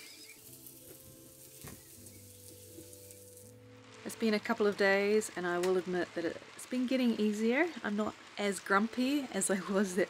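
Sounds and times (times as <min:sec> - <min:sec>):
food sizzling on a hotplate: 0:00.0 - 0:10.0
soft background music: 0:00.0 - 0:10.0.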